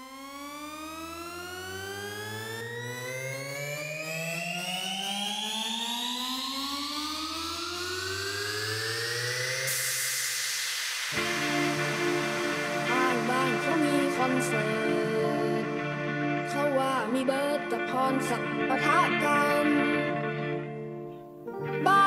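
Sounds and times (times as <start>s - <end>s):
synth riser gliding upward: 0.0s - 17.5s
rising noise hiss: 5.6s - 16.8s
low sustained bass drone: 6.1s - 17.1s.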